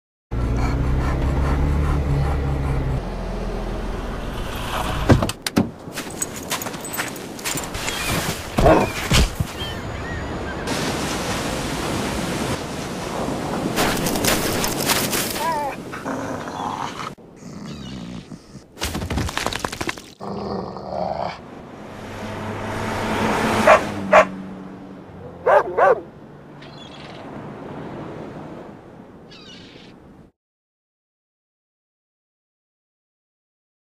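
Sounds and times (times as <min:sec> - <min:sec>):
car engine humming: 0:00.3 - 0:07.0
dog barking: 0:23.6 - 0:24.3, 0:25.4 - 0:26.1.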